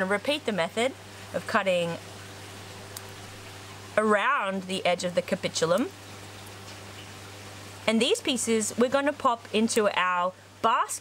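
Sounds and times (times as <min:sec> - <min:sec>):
faint hum: 0:00.0 - 0:11.0
low background hiss: 0:00.0 - 0:11.0.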